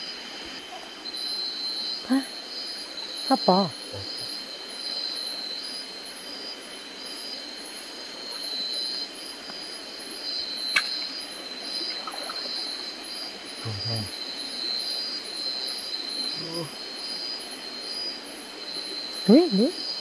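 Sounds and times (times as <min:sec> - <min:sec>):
night insects trilling: 0:00.0 - 0:20.0.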